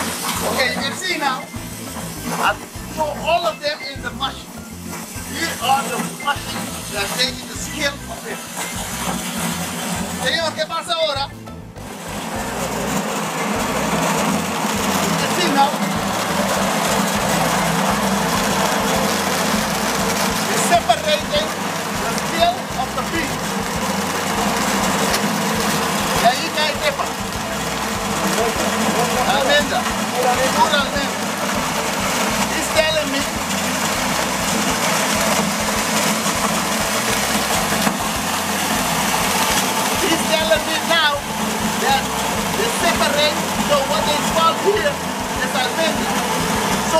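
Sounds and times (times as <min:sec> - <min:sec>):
coffee huller whirring: 0:00.0 - 0:46.9
rattle of beans: 0:00.0 - 0:46.9.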